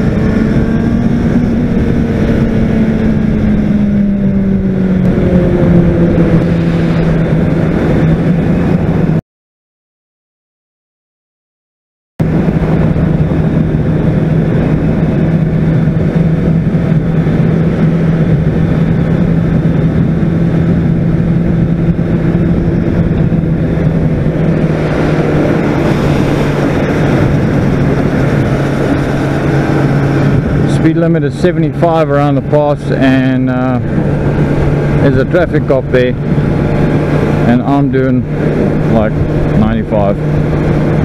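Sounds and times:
motorcycle engine cruising: 0.0 - 9.2, 12.2 - 41.0
wind rushing over microphone: 0.0 - 9.2, 12.2 - 41.0.

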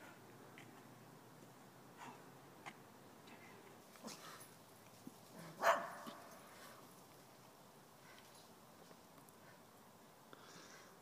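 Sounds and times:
dog barking: 5.5 - 6.2.

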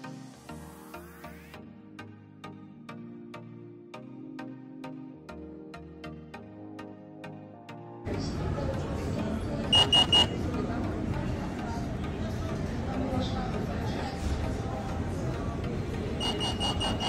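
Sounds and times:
pager beeping: 9.7 - 10.4, 16.2 - 17.0.

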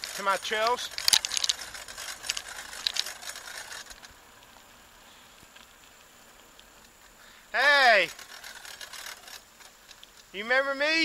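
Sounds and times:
bicycle rattling and clicking: 0.0 - 10.4
quiet hiss: 0.0 - 11.0.

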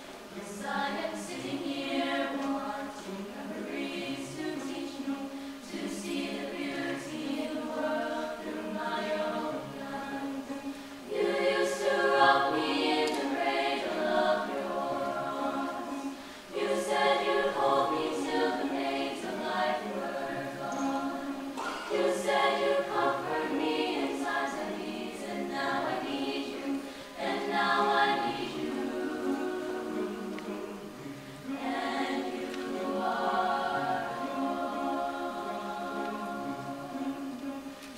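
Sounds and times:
chamber choir singing a cappella: 0.0 - 37.9.

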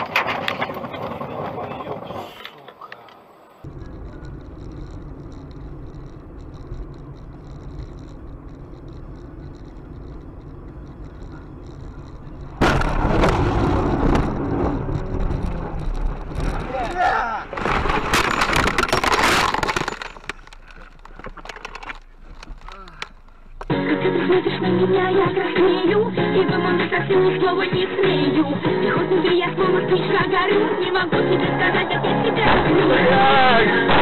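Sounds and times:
car engine and road drone: 0.0 - 34.0
car crash impacts and crunching: 12.6 - 20.5
glass breaking: 17.5 - 20.4.

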